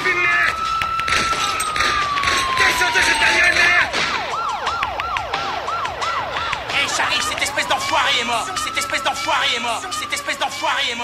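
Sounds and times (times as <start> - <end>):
siren yelping: 0.0 - 11.0.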